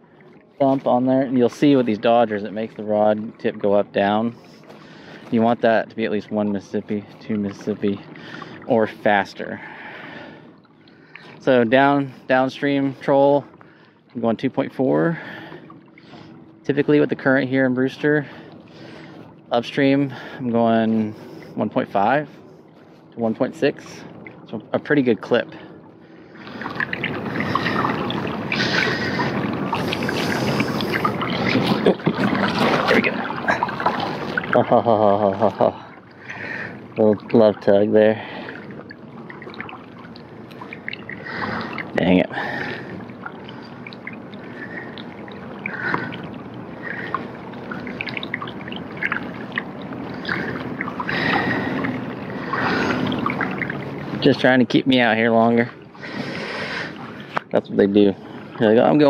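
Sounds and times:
water rushing along kayak hull: 0:00.0 - 0:59.0.

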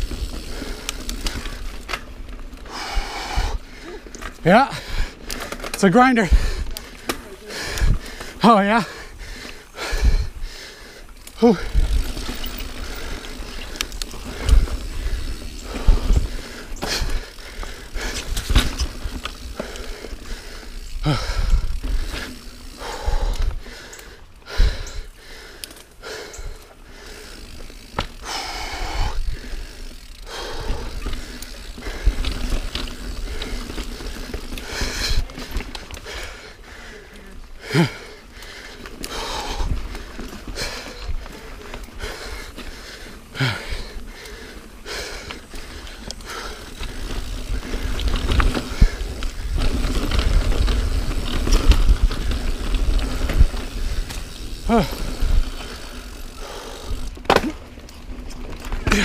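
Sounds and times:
bike tyre rumble on dirt: 0:00.0 - 0:59.0
bike knocks and rattles: 0:18.0 - 0:19.8, 0:57.2 - 0:57.8.

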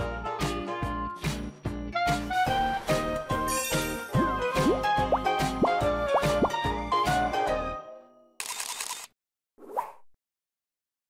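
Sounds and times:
upbeat theme music: 0:00.0 - 0:08.0.

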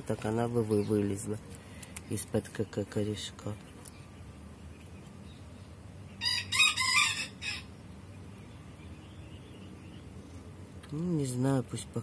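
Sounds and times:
rooster crowing: 0:06.2 - 0:07.7.

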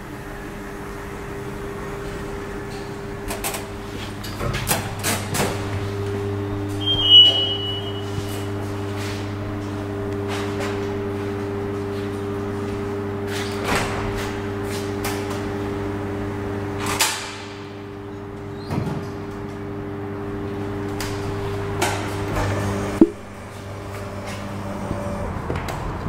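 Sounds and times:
elevator machinery hum: 0:00.0 - 0:13.4
elevator doors closing: 0:06.5 - 0:11.4.

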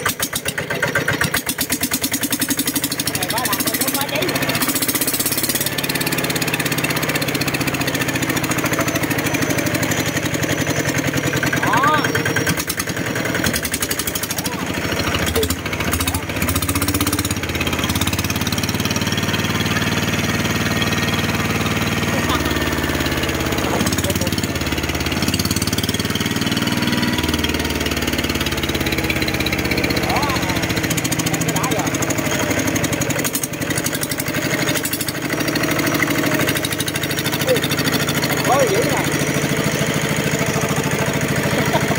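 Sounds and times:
diesel engine running: 0:00.0 - 0:41.9.

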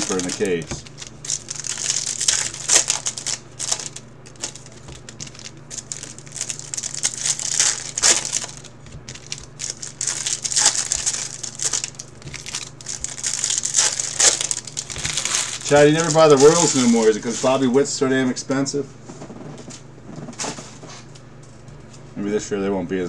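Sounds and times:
foil wrappers crinkling and tearing: 0:00.0 - 0:17.8
steady low hum: 0:00.0 - 0:23.0.

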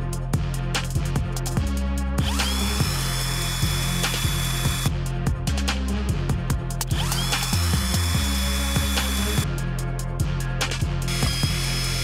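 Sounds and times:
background music with steady beat: 0:00.0 - 0:12.0
cordless drill motor whine: 0:02.2 - 0:04.9, 0:07.0 - 0:09.4, 0:11.1 - 0:12.0.

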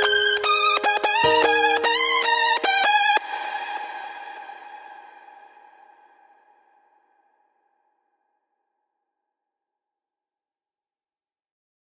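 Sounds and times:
held synth chord: 0:00.0 - 0:04.6.

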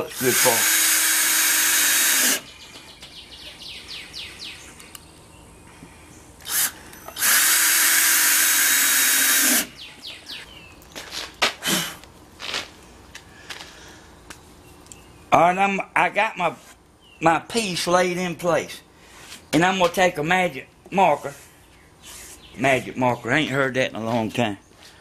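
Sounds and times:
cordless drill boring into wood: 0:00.0 - 0:02.5, 0:06.4 - 0:09.7
faint chirps and clicks: 0:04.7 - 0:05.3, 0:14.3 - 0:15.1.

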